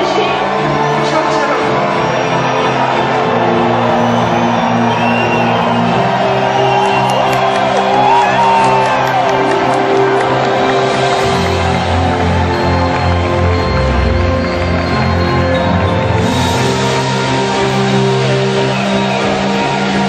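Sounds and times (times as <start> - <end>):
crowd cheering and whooping: 0.0 - 20.0
live pop music: 0.0 - 20.0.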